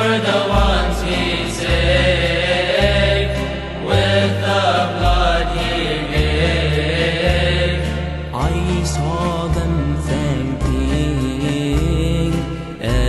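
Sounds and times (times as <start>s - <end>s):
chant-like sung hymn: 0.0s - 13.0s.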